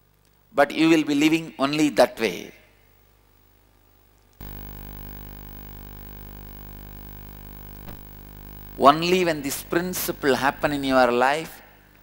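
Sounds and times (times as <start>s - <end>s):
electrical buzzing hum: 0.0s - 12.0s.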